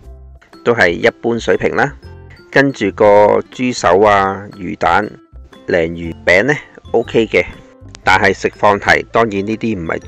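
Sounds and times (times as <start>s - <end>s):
background music: 0.0s - 10.0s
person speaking: 0.6s - 10.0s.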